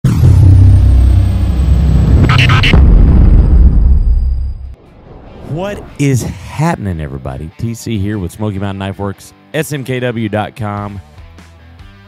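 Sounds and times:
deep rumble: 0:00.0 - 0:06.1.

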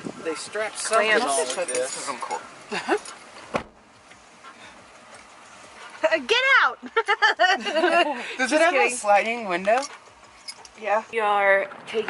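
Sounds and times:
faint steady cab noise: 0:00.0 - 0:12.0.

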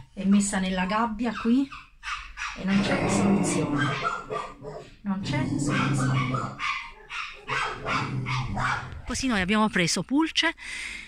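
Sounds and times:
dog barking: 0:00.0 - 0:05.0, 0:05.6 - 0:09.1.

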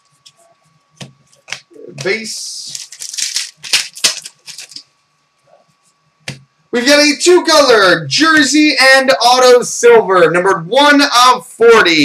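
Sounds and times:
foil wrapper crinkling: 0:01.4 - 0:04.8.

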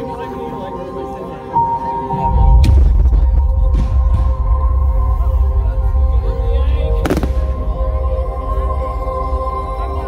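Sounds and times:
firework bang: 0:07.0 - 0:07.6.

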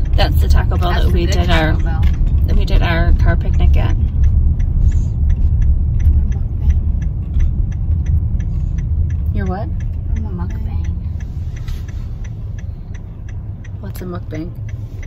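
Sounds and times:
car road and engine rumble: 0:00.0 - 0:15.0
turn signal ticking: 0:00.0 - 0:15.0.

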